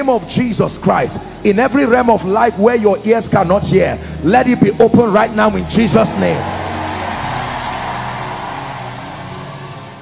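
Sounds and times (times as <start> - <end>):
crowd cheering and shouting: 5.0 - 10.0.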